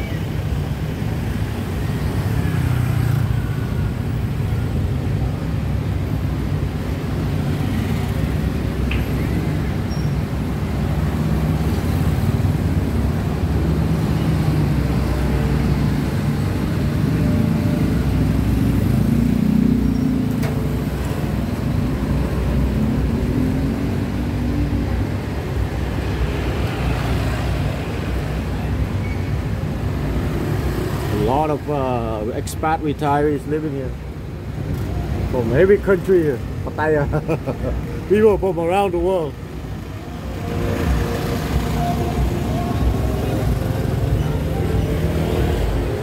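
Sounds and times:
city traffic: 0.0s - 46.0s
road noise: 0.0s - 46.0s.

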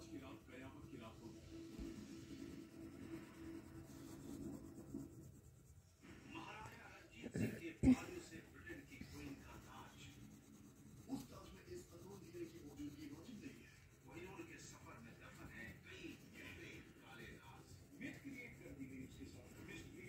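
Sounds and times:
crayon scratching on paper: 0.2s - 5.8s, 8.2s - 20.0s
faint background voices: 6.0s - 20.0s.

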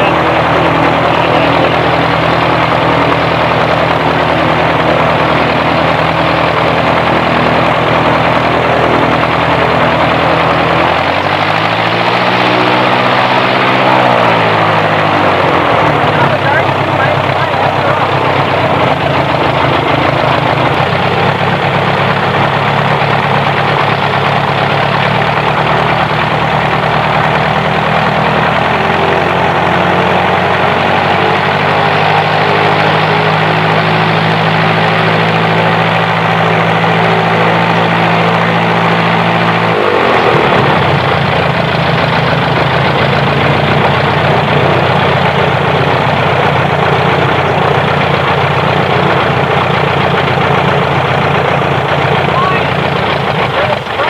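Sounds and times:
aircraft engine running: 0.0s - 54.0s.

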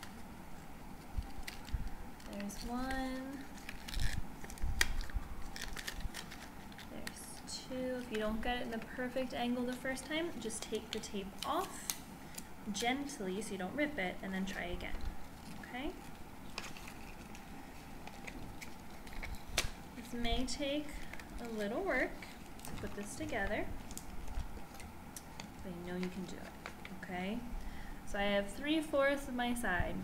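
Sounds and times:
paper crinkling: 0.0s - 10.0s, 14.6s - 27.0s.

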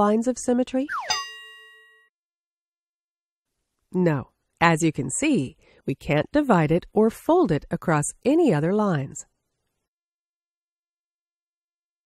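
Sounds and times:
bell-like ding: 0.9s - 2.1s.

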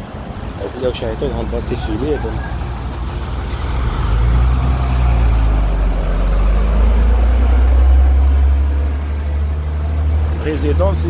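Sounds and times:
heavy vehicle engine rumble: 0.0s - 11.0s.

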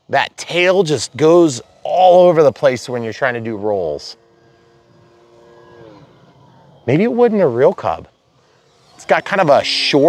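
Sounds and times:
electric model plane motor whine: 0.0s - 10.0s.

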